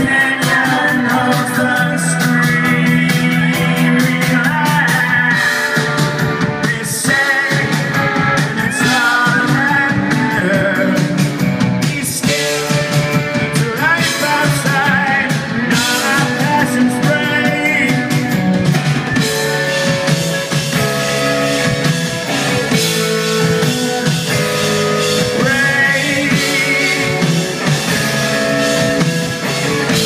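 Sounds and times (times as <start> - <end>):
man singing: 0.0 - 20.5, 22.7 - 28.2
live rock band: 0.0 - 30.0.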